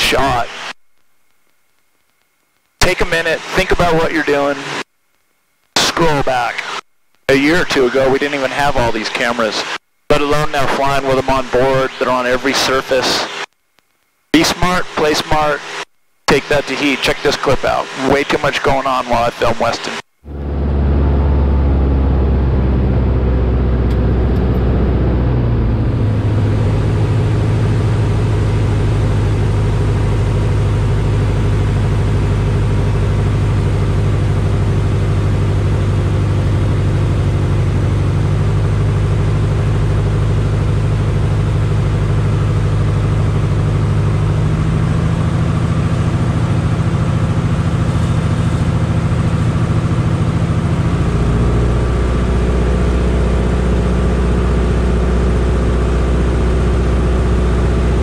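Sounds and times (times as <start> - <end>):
airplane engine and propeller droning: 2.8 - 4.8, 7.4 - 13.4, 14.4 - 58.0.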